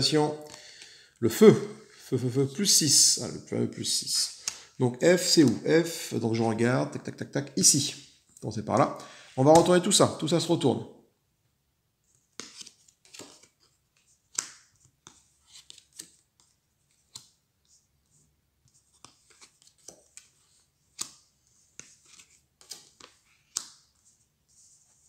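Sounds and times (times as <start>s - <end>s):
cards flipped and slid on mat: 12.1s - 17.8s, 18.6s - 25.0s.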